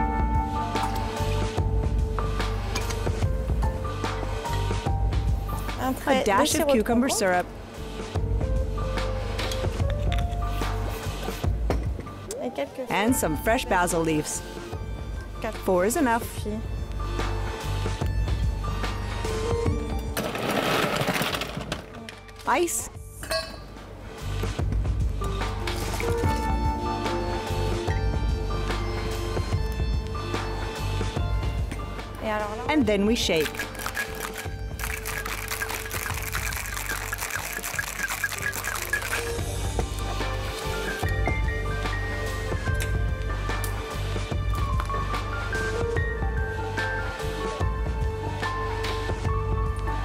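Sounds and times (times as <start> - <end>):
background music: 0.0 - 50.0
ice cubes clattering into shaker: 33.4 - 39.4.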